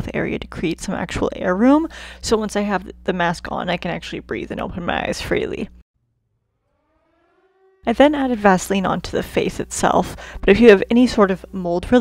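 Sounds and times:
woman speaking: 0:00.0 - 0:05.8, 0:07.9 - 0:12.0
faint rising tone: 0:06.0 - 0:08.8.

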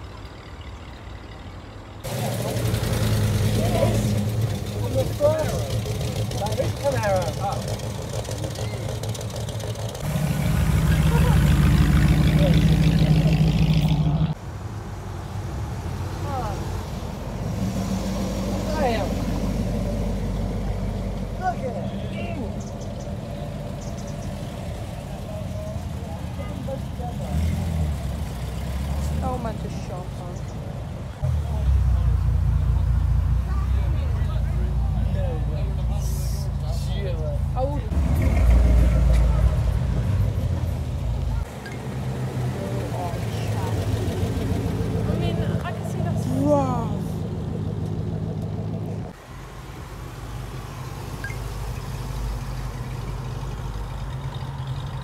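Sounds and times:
cars driving slowly past: 0:00.0 - 0:55.0
people talking: 0:03.5 - 0:07.8, 0:10.9 - 0:13.6, 0:16.2 - 0:16.7, 0:18.5 - 0:19.3, 0:21.4 - 0:22.7, 0:25.0 - 0:27.6, 0:29.0 - 0:32.2, 0:33.4 - 0:37.9, 0:42.6 - 0:44.3, 0:45.0 - 0:47.2.

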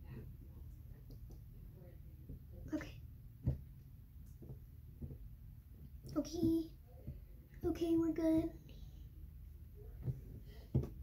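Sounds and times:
dull thump: 0:10.0 - 0:11.0.

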